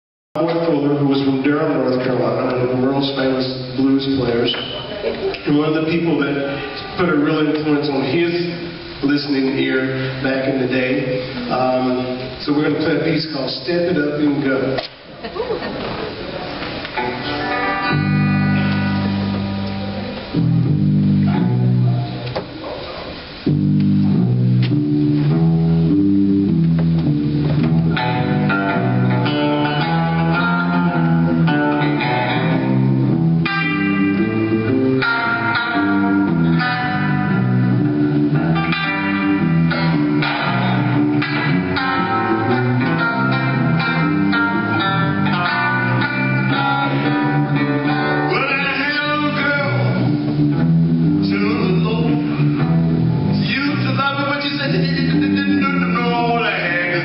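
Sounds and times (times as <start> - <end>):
guitars playing blues: 0.4 - 57.0.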